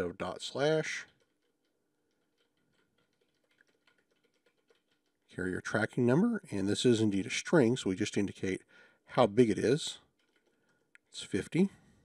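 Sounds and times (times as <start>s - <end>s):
faint keyboard typing: 0.0s - 6.4s, 7.6s - 11.9s.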